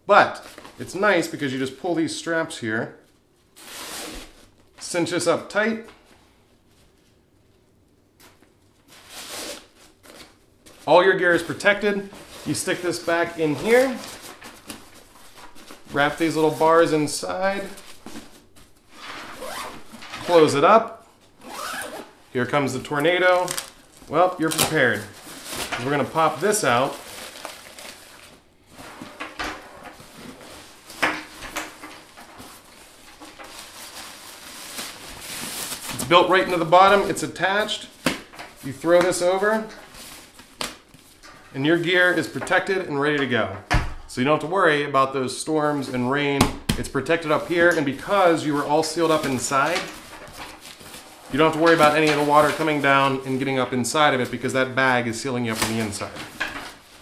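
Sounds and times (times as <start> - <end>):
nylon fabric rustling: 8.6 - 22.3, 23.1 - 29.2, 47.3 - 53.4
fabric rustling: 17.6 - 20.5, 23.1 - 29.2.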